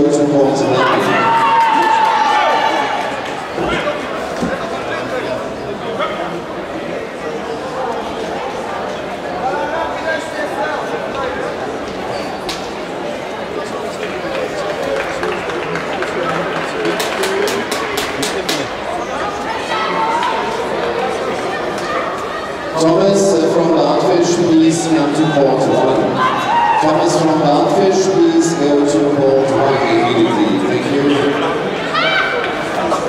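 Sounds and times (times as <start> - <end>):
spectators chattering: 0.0 - 33.0
sharp hand claps: 14.9 - 18.7.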